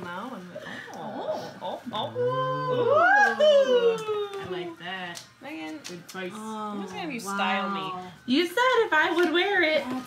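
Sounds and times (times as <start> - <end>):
people saying ooh in admiration: 2.0 - 4.5.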